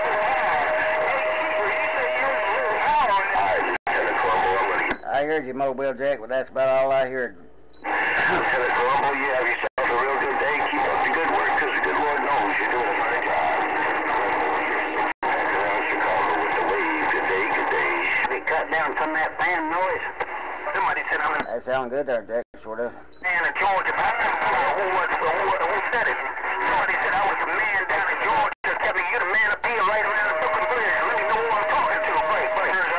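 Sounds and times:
radio static: 0:00.0 - 0:05.0, 0:07.8 - 0:32.9
garbled radio voice: 0:00.0 - 0:05.4, 0:07.9 - 0:32.9.

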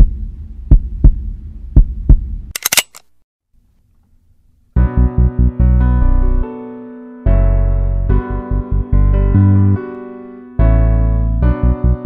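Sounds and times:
heartbeat thuds: 0:00.0 - 0:02.5
low hum: 0:00.0 - 0:06.4.

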